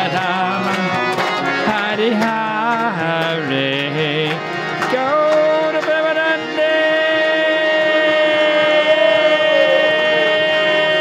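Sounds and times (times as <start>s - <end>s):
harmonium chord: 0.0s - 11.0s
man singing held note: 6.4s - 11.0s.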